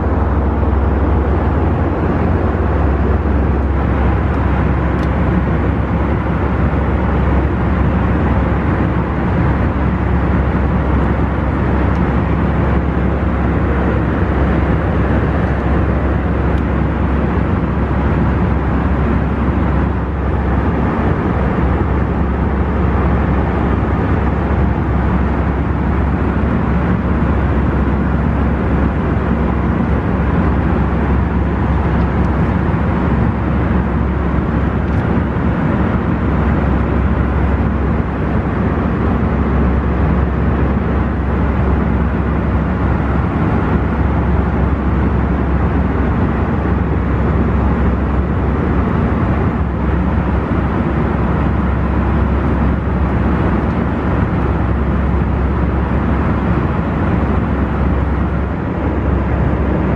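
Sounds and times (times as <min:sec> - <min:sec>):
jet engines droning: 0:00.0 - 0:59.9
rushing air in cabin: 0:00.0 - 0:59.9.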